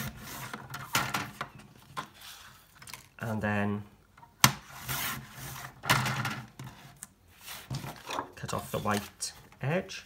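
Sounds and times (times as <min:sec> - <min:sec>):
paper rustling: 0:06.7 - 0:09.5.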